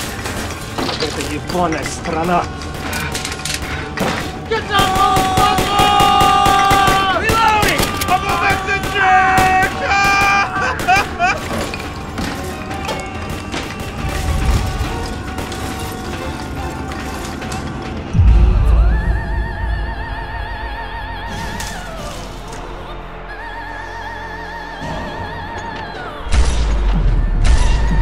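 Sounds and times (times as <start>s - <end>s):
film score music: 0.0s - 28.0s
deep boom: 18.1s - 21.4s.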